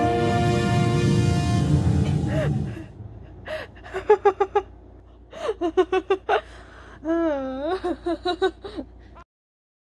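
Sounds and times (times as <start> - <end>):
high-pitched giggling: 3.6 - 9.2.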